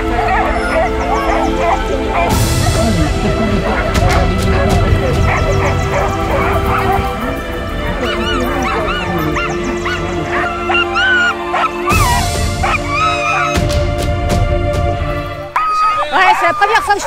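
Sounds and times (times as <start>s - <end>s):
huskies whining and yipping: 0.0s - 13.8s, 15.5s - 17.0s
background music with held notes: 0.0s - 17.0s.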